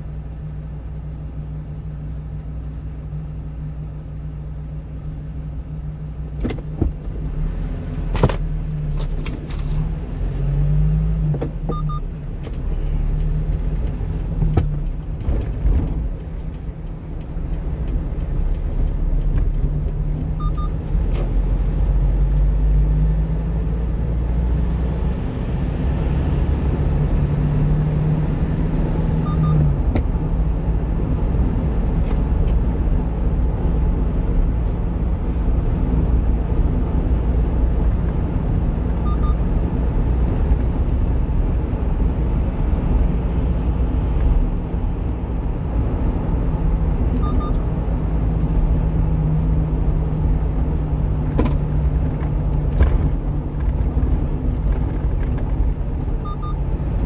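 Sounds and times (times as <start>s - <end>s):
truck engine drone: 0.0s - 57.0s
tyre and road noise: 6.1s - 57.0s.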